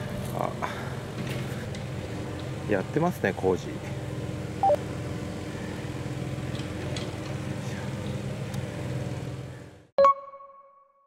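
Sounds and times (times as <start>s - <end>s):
diesel engine running: 0.0s - 9.9s.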